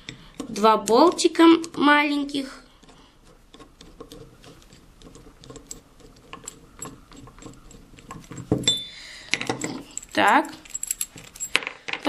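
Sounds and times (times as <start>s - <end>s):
screwdriver clicking and scraping: 0.0s - 12.0s
metal clink: 5.6s - 12.0s.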